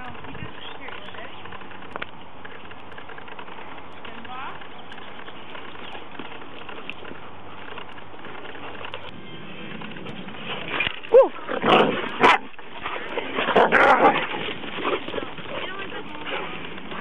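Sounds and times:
dogs growling and barking: 9.6s - 17.0s
dog yelp: 11.1s - 12.5s.

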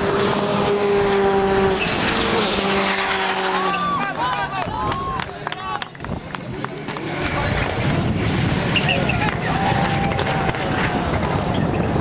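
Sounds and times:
racing car engines running hard: 0.0s - 12.0s.

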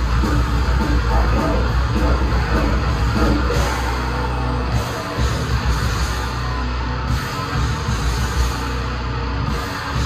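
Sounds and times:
death metal band playing live: 0.0s - 10.0s
distorted electric guitars: 0.0s - 10.0s
drum kit: 0.0s - 10.0s.

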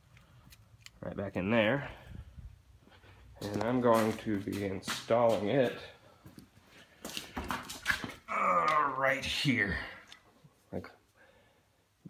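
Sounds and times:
footsteps on concrete: 2.8s - 8.9s.

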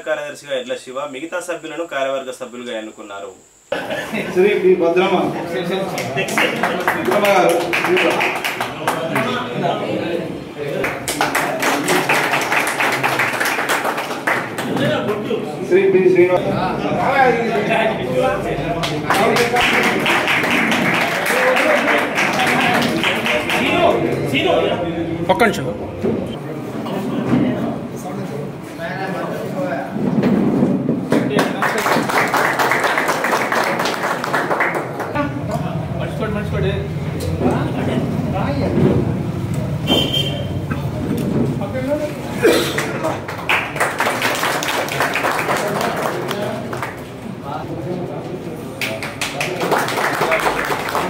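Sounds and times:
people clapping: 5.7s - 9.7s, 10.7s - 15.4s, 18.7s - 24.7s, 31.0s - 35.3s, 42.6s - 47.5s, 48.7s - 51.0s.

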